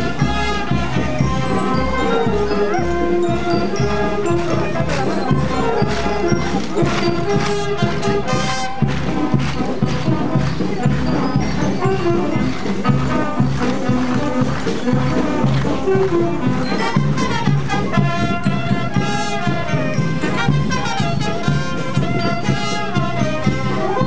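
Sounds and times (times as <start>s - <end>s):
brass notes: 0.0s - 24.0s
steady percussion: 0.0s - 24.0s.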